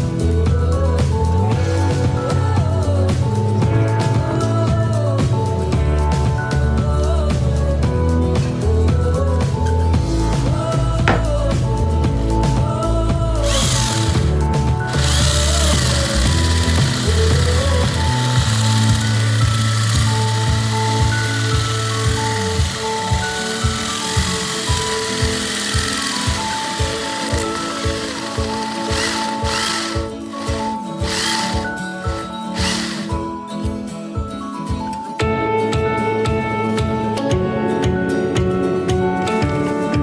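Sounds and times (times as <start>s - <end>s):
background music with a beat: 0.0s - 40.0s
electric drill boring wood: 13.4s - 33.2s.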